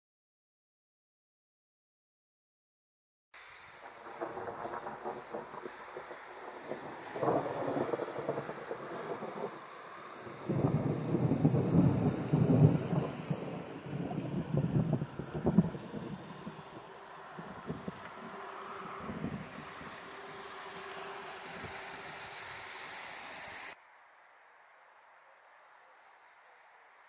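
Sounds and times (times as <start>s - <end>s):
thunder rumbling: 3.6s - 22.2s.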